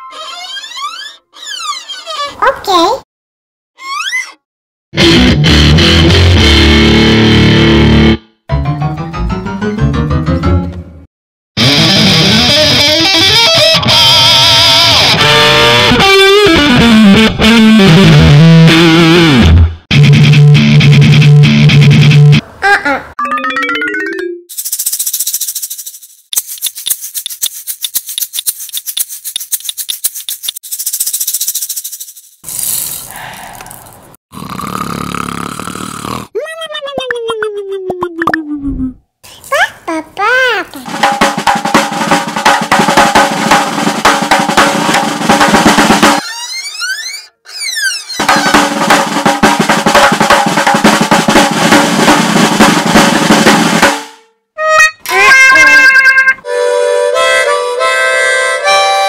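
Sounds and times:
toy drum drumming: 24.5s - 31.8s, 40.9s - 46.2s, 48.2s - 53.9s
toy maracas rattling: 24.5s - 33.1s.

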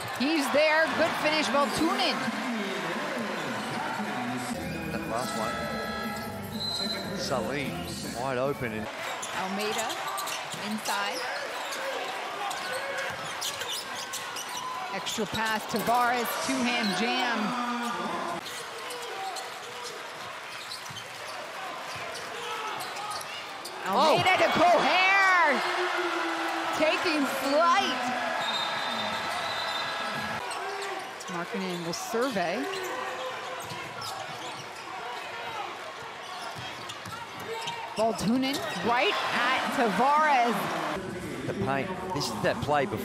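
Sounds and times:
crowd noise: 0.0s - 43.0s.

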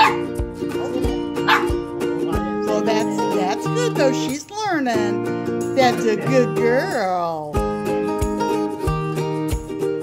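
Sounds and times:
small dog barking: 0.0s - 1.8s
background music: 0.0s - 10.0s.

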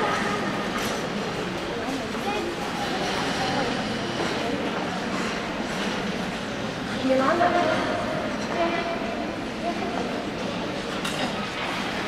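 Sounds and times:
faint murmuring voices: 0.0s - 12.0s.

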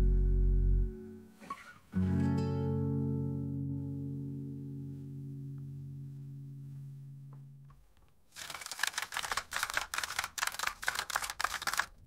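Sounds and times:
rapid clatter of sharp clicks: 8.4s - 12.0s.

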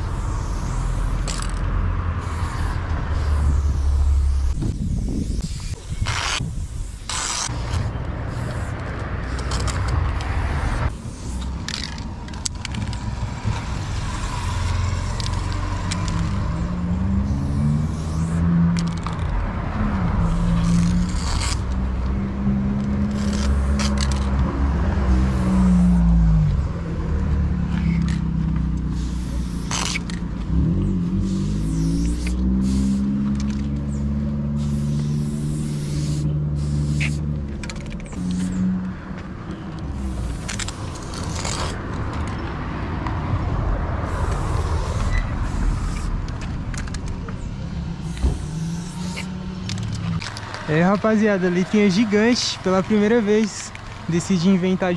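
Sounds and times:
spray paint can hissing: 0.0s - 26.1s, 27.4s - 38.8s, 39.8s - 42.4s, 44.0s - 54.9s.

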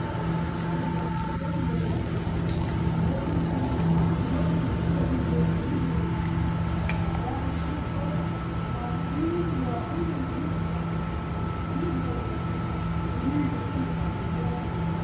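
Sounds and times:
ventilation hum: 0.0s - 15.0s.

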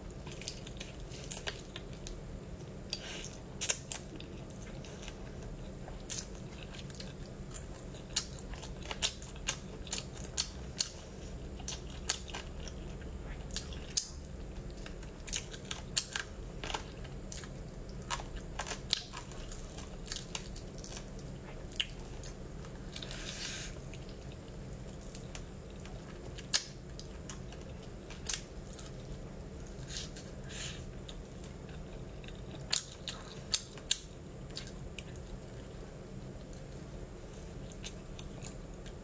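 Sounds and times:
steady low hum: 0.0s - 39.0s
person chewing chicken: 2.7s - 29.1s, 29.7s - 35.4s.

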